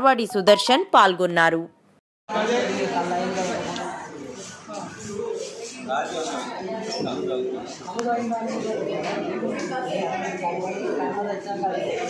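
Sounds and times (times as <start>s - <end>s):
people talking at once: 2.3s - 12.0s.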